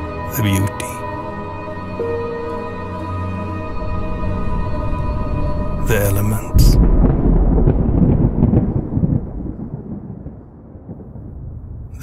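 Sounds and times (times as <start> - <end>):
deep rumbling boom: 3.6 - 12.0.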